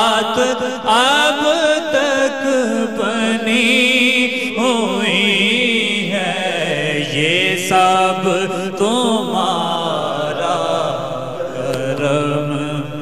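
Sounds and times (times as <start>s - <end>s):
man singing devotional song: 0.0s - 13.0s.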